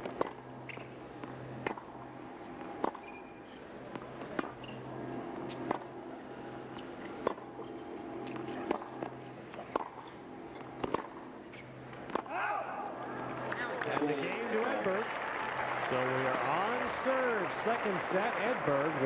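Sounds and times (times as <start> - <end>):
racket striking tennis ball: 0.0 - 12.4
tennis ball bouncing: 0.0 - 12.4
crowd shouting and cheering: 12.3 - 19.0.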